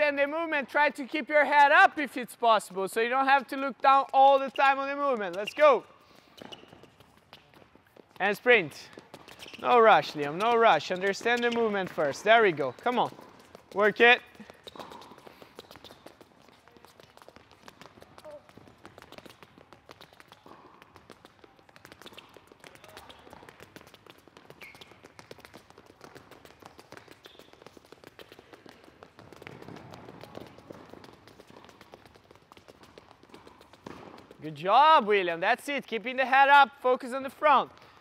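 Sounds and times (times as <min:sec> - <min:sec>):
rapid light footsteps on a court: 0:00.0 - 0:38.0.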